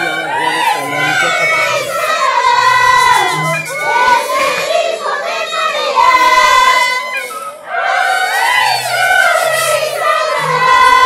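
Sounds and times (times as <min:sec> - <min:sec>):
girls singing together: 0:00.0 - 0:11.0.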